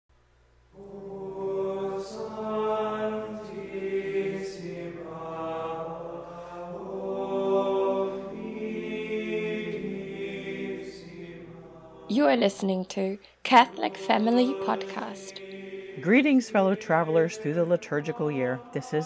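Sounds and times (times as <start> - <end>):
sung chant: 0.8 - 12.2, 13.5 - 19.0.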